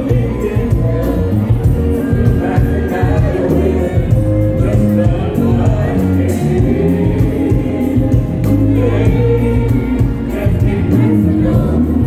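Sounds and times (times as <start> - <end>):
live soul band with singing: 0.0 - 12.0.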